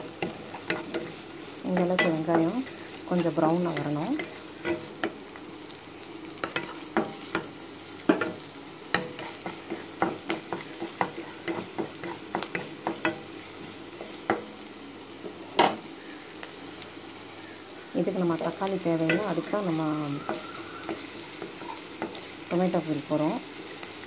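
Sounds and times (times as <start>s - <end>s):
onions sizzling in oil: 0.0s - 24.0s
utensil scraping pan: 9.0s - 13.2s, 19.0s - 22.3s.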